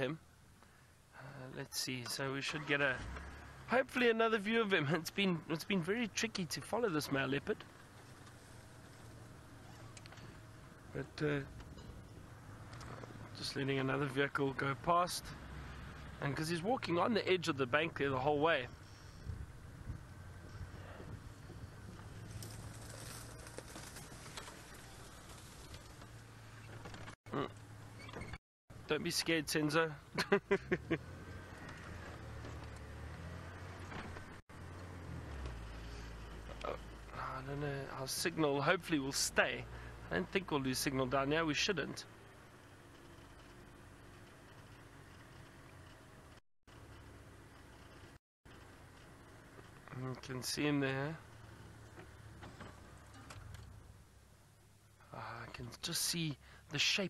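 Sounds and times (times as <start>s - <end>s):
vehicle engine running at low revs: 4.8s - 28.0s, 30.2s - 37.7s.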